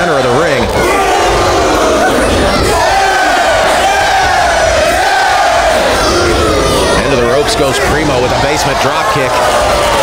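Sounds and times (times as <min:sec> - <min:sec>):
crowd yelling: 0:00.0 - 0:10.0.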